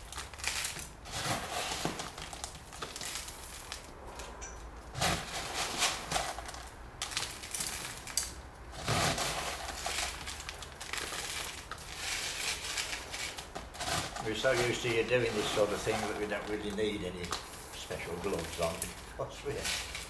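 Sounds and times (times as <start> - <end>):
grit rustling by hand: 0.0 - 3.9, 5.0 - 20.0.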